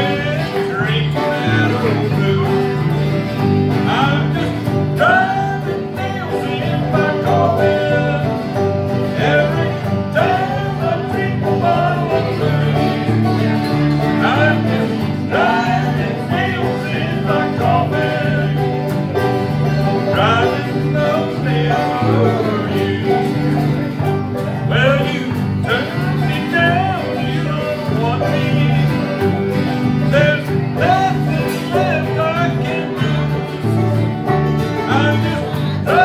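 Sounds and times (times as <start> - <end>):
bluegrass band playing: 0.0 - 36.0.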